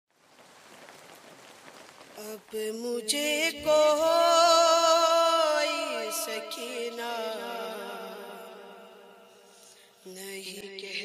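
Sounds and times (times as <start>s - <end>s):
faint crackling hiss: 0.1s - 6.8s.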